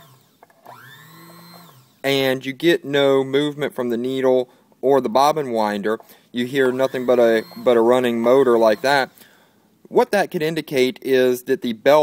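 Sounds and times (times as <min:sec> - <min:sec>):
sewing machine motor running: 0:00.0 - 0:02.0.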